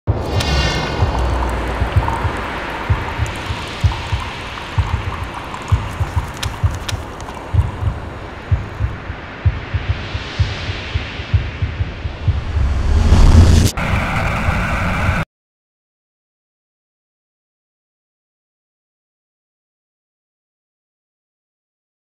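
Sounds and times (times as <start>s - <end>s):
dark cinematic music: 0.1s - 6.9s
low thumps: 0.1s - 13.7s
hissing wash: 0.1s - 15.2s.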